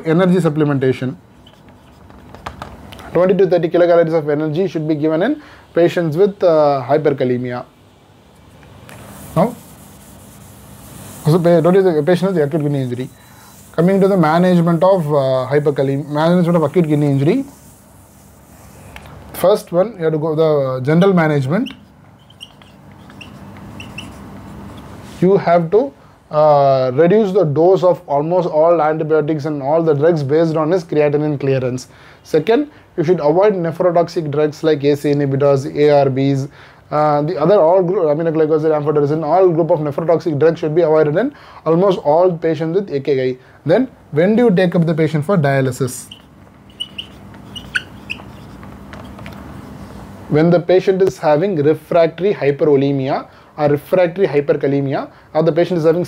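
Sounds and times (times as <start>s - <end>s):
faint steady hum: 0.0s - 56.0s
whiteboard marker squeaking: 1.3s - 2.6s, 8.6s - 19.4s, 21.0s - 24.9s, 45.9s - 49.7s.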